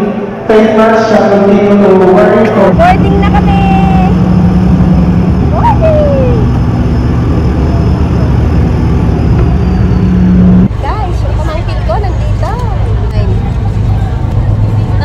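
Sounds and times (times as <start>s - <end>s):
ferry engines humming: 0.0s - 15.0s
low rumble: 0.0s - 15.0s
voices: 0.0s - 15.0s.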